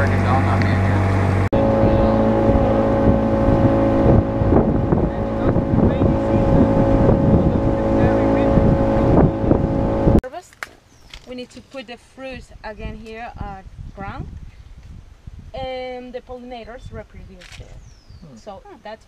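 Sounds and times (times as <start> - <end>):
motorboat engine drone: 0.0 - 10.2
water rushing past hull: 0.0 - 10.2
voices: 0.0 - 10.6, 15.6 - 19.0.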